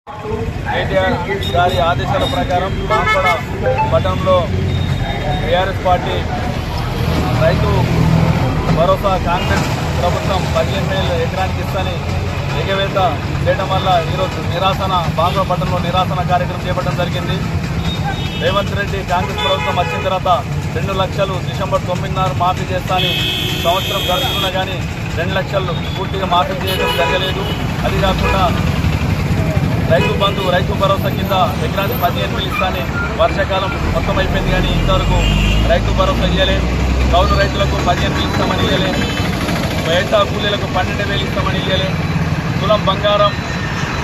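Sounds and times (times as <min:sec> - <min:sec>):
vehicle engine rumbling: 0:00.1 - 0:44.0
man speaking: 0:00.3 - 0:17.5, 0:18.4 - 0:28.7, 0:29.5 - 0:42.0.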